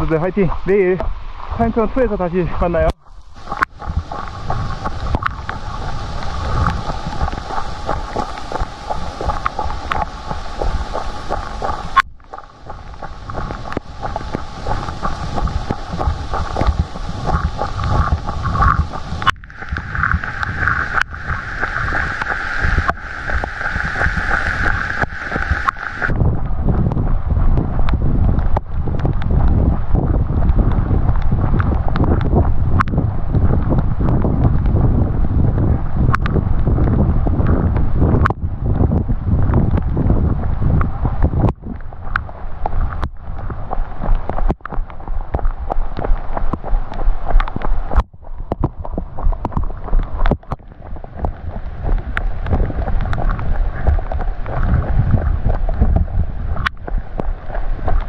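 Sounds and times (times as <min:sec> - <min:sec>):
raindrops hitting camera: 0:00.0 - 0:58.0
wind buffeting microphone: 0:00.0 - 0:58.0
bright hiss: 0:14.2 - 0:26.1.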